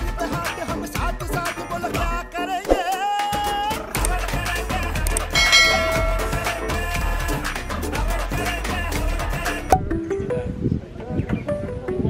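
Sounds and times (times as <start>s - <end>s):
ringing bell chime: 5.4s - 7.0s.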